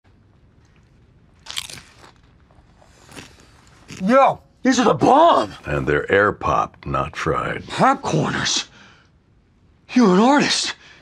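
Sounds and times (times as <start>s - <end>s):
chips being crunched: 1.4s - 2.4s.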